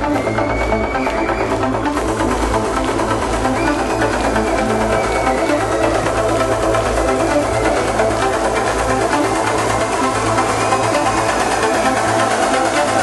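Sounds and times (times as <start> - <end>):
synth-pop band music: 0.0 - 13.0.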